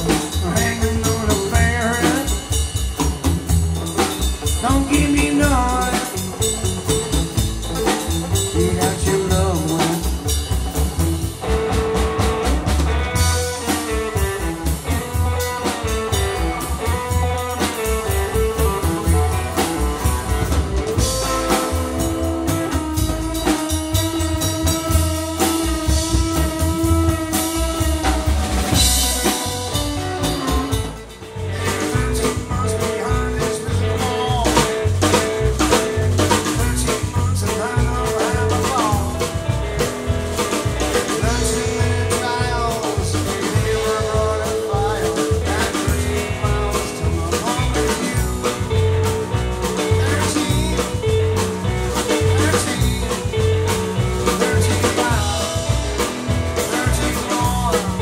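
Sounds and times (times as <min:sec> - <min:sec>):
drum kit swing beat: 0:00.0 - 0:58.0
guitar lines: 0:00.0 - 0:58.0
upright bass walking: 0:00.0 - 0:58.0.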